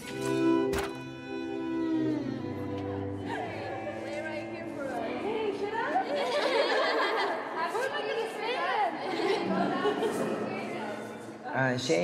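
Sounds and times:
crowd chattering and calling out: 2.4 - 11.8.

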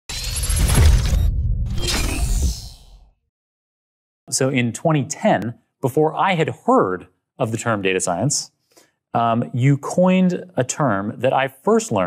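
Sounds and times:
sound-effect hit: 0.1 - 3.2.

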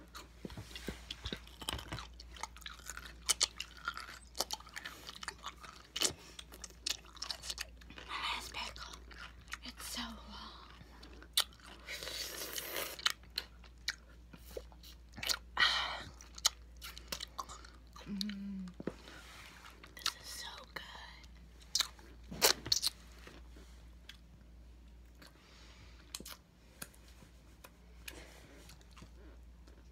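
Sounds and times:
person humming: 18.0 - 18.8.

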